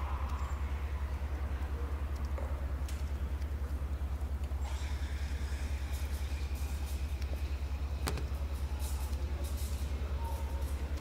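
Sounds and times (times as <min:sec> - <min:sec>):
low pulsing drone: 0:00.0 - 0:11.0.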